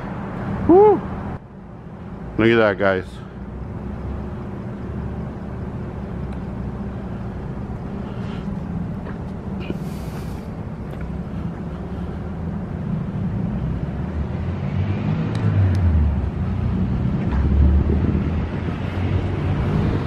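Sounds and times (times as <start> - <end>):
steady low rumble: 0.0 - 14.4, 15.3 - 20.0.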